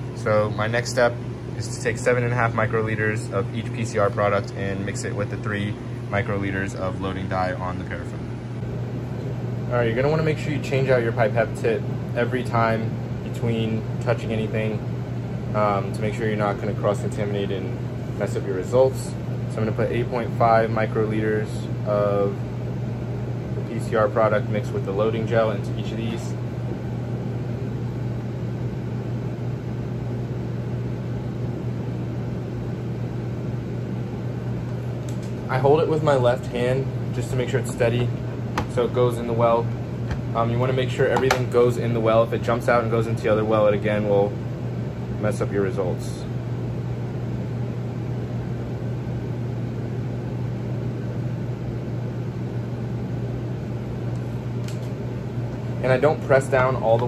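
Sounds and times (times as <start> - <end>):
low machine hum: 0.0 - 57.0.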